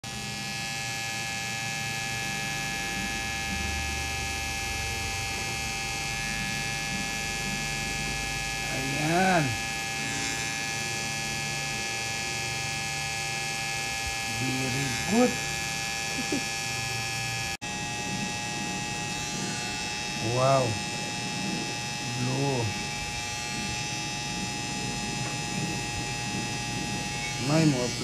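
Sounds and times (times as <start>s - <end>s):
tattoo machine buzzing: 0.0s - 28.0s
person's voice: 27.4s - 28.0s.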